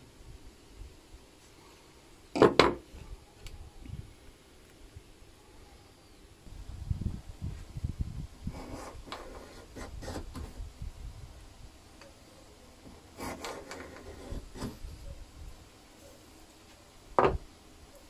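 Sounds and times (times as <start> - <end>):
block plane shaving wood: 12.9 - 14.8.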